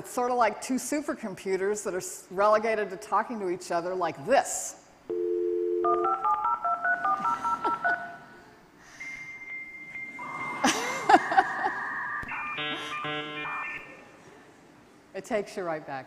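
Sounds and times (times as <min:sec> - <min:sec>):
touch-tone dialing: 0:05.1 - 0:07.6
high answer tone: 0:12.2 - 0:14.0.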